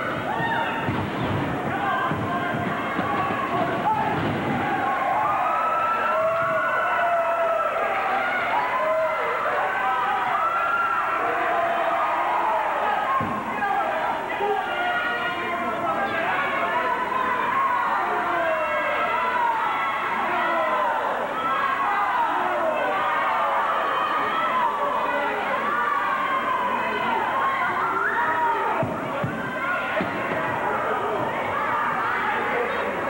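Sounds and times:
crowd yelling and shouting: 0.0s - 33.0s.

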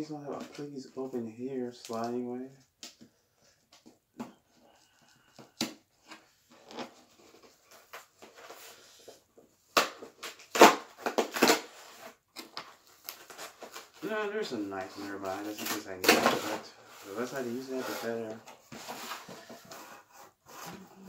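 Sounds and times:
cardboard tearing: 9.8s - 14.3s
cardboard scraping and crinkling: 10.1s - 21.0s.

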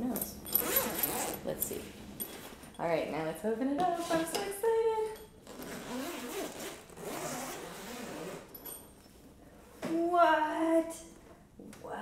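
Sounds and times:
zipper being unzipped: 0.6s - 1.4s, 5.4s - 8.5s.

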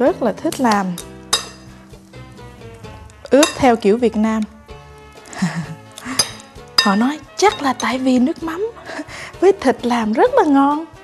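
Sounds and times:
soft background music: 0.0s - 11.0s
utensils clinking against glass bowl: 1.0s - 1.7s, 3.3s - 3.8s, 6.0s - 8.1s.

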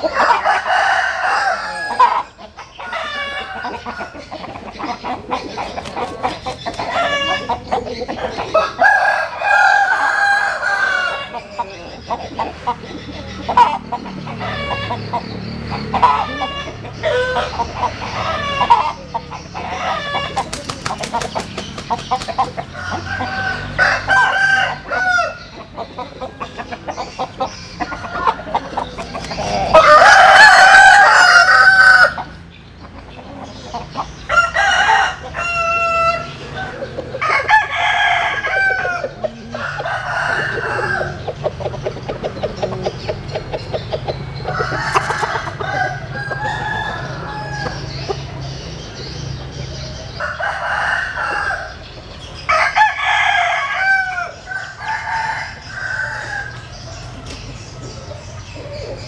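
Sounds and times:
chickens clucking: 0.0s - 59.0s
roosters crowing: 0.0s - 59.0s.

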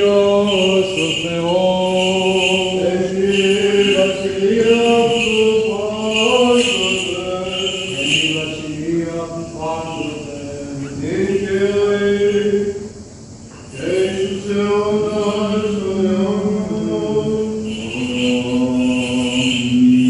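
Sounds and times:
male chanters singing over drone: 0.0s - 20.0s.

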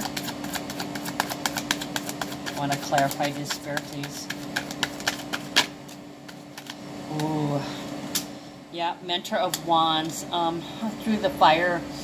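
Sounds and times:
cards being shuffled: 0.0s - 7.4s
steady low hum: 0.0s - 12.0s.

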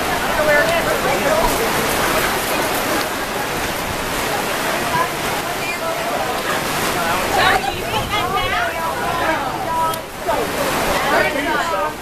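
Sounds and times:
faint voices: 0.0s - 12.0s
heavy rain pouring: 0.0s - 12.0s.

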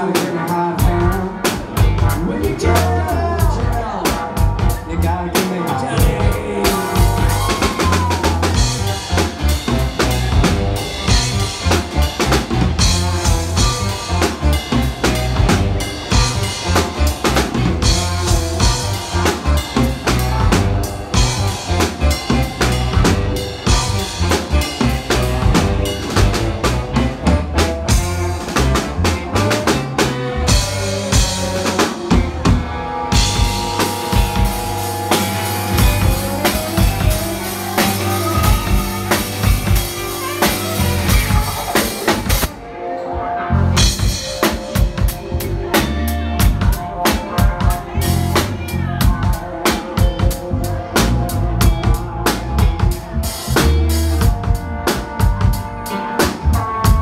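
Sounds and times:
drum kit beat: 0.0s - 42.5s, 43.8s - 57.0s
electric bass: 0.0s - 57.0s
electric guitars: 0.0s - 57.0s.

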